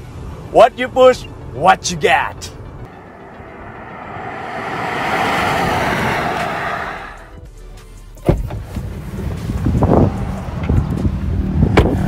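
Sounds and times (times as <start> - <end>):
car tyre and wind noise passing: 2.8 - 7.4, 8.8 - 12.0.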